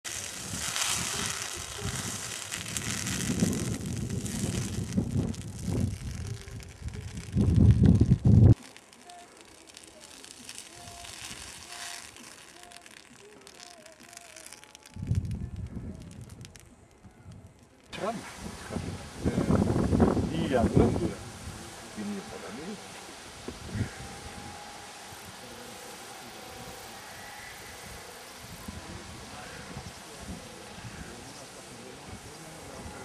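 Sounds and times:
burning brush crackling: 0.0 - 33.0.

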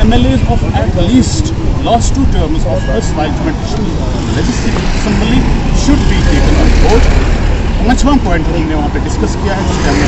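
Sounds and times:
man speaking: 0.0 - 7.2, 7.8 - 10.0.

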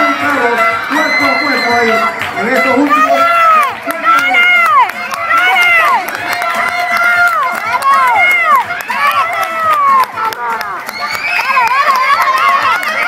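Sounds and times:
spectators shouting and cheering: 0.0 - 13.0.

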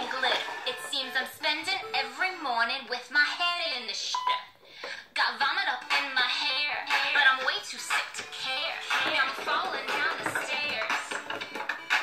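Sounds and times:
person's voice: 0.0 - 4.5.

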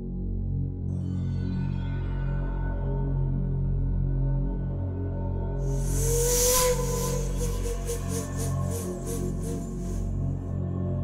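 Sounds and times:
low steady drone: 5.4 - 10.6
hissing swell with whistling tone: 5.6 - 10.4.

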